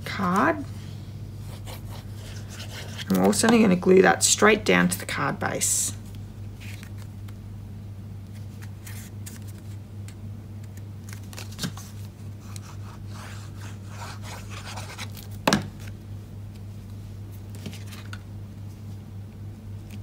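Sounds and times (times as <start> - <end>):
steady low hum: 0.0 - 20.0
paper rustling and scraping: 1.4 - 3.5, 6.6 - 7.1, 8.3 - 9.8, 10.7 - 16.0, 17.3 - 18.8.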